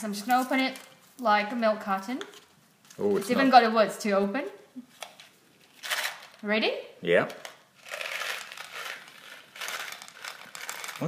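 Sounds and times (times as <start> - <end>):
candies rattling on wooden board: 7.3 - 11.0.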